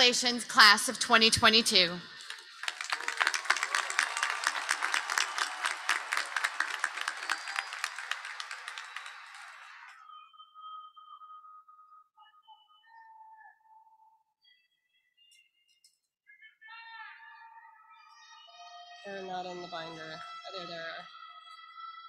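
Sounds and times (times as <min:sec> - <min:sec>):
large crowd applauding: 0:02.0 - 0:10.0.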